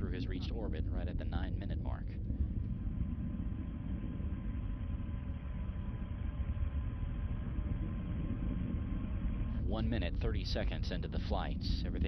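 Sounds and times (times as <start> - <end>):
faint steady tone: 0.0 - 12.0
rocket engines rumbling: 0.0 - 12.0.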